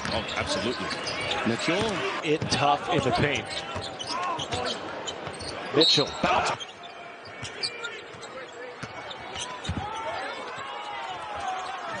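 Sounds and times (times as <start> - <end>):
sneakers squeaking: 0.0 - 12.0.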